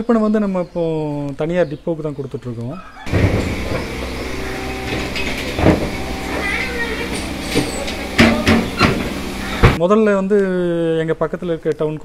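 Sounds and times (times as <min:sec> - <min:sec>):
engine idling: 0:03.1 - 0:09.8.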